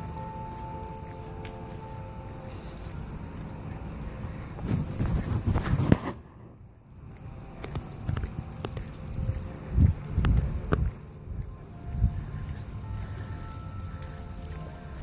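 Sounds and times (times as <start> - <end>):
light jingling: 0.0 - 15.0.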